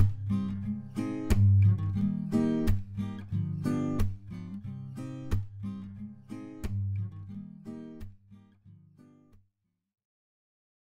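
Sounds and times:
acoustic guitar strumming chords: 0.0 - 9.3.

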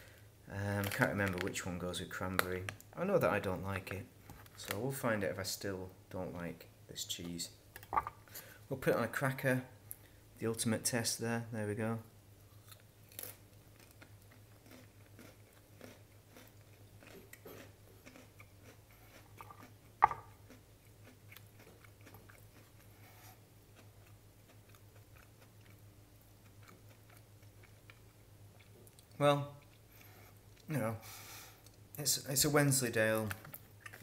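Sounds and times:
low steady hum: 0.0 - 34.0
person chewing crunchy food: 12.5 - 30.7.

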